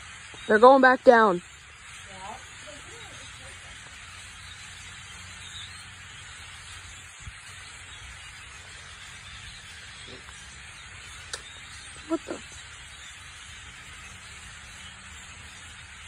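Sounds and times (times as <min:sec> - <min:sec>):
flock of birds flying: 0:00.0 - 0:16.0.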